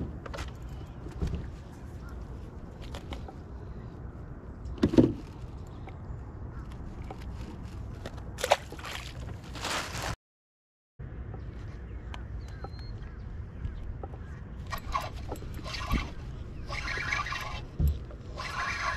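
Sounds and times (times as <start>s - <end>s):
rustling handling noise: 6.7s - 10.2s.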